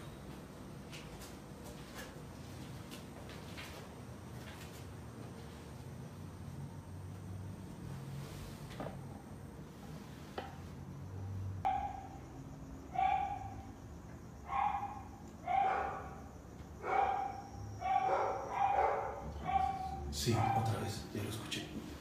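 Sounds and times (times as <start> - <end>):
dog barking: 11.6 - 12.2, 12.9 - 13.7, 14.5 - 21.0.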